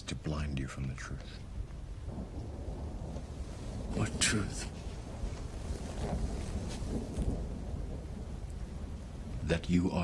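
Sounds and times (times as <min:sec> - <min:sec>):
thunder rumble over loudspeakers: 0:01.9 - 0:10.0.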